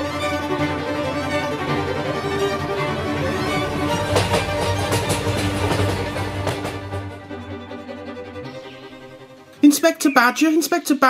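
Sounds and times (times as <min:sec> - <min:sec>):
bowed string music: 0:00.0 - 0:11.0
sharp percussive hits: 0:03.6 - 0:07.3.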